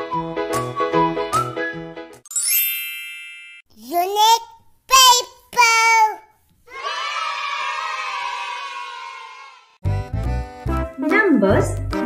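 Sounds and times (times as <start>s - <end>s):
bright sparkly chime: 2.3s - 3.7s.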